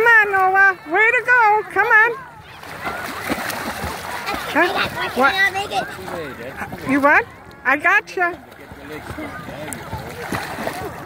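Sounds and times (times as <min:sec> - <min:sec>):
voices: 0:00.0 - 0:11.0
water splashing from swimming: 0:00.0 - 0:11.0.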